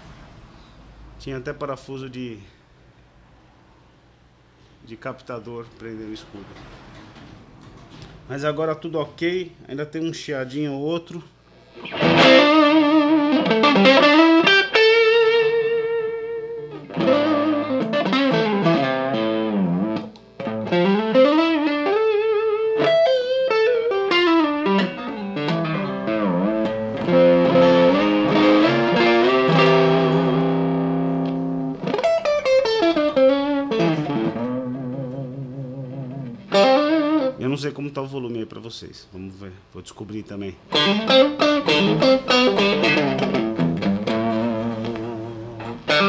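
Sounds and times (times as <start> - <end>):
electric guitar lead lines: 11.5 - 37.6, 40.7 - 46.0.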